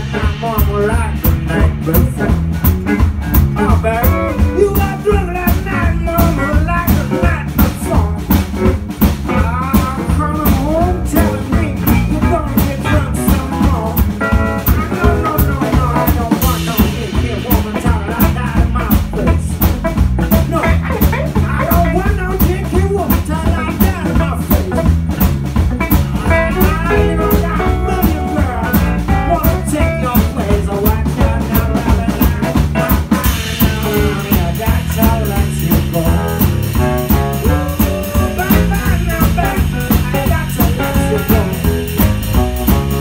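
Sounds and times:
live blues band playing: 0.0 - 43.0
resonator guitar lead bending: 11.1 - 43.0.

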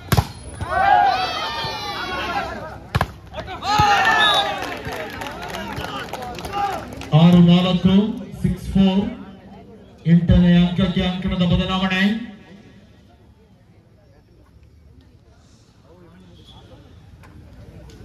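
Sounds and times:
volleyball being struck: 0.0 - 0.4
crowd shouting and cheering: 0.0 - 8.0.

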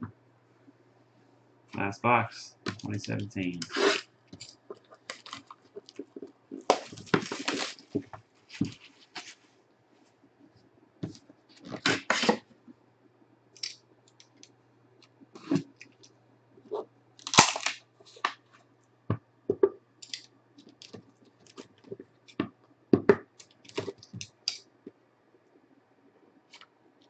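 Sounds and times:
cardboard rustling and scraping: 5.1 - 9.5.

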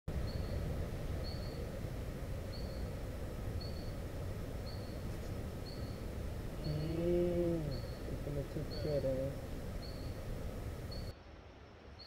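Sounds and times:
person groaning: 6.7 - 7.7.

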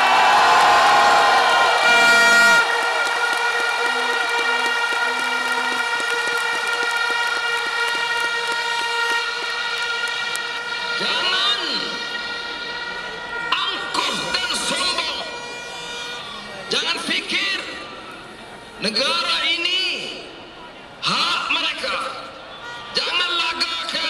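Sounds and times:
crowd din: 0.0 - 18.8
crowd blowing horns: 0.0 - 19.4, 22.2 - 24.0
short low horn toots: 1.0 - 16.5
fast clapping: 2.6 - 10.6.

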